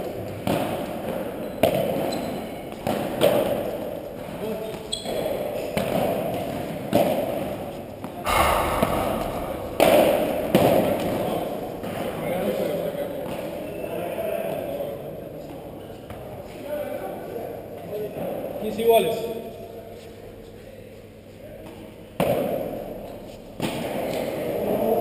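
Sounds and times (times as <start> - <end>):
padel ball hits echoing: 8.3 - 12.0.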